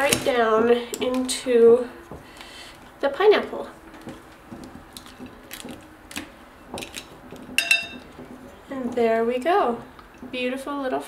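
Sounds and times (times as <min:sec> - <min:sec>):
metal clinking against glass: 0:07.6 - 0:08.0.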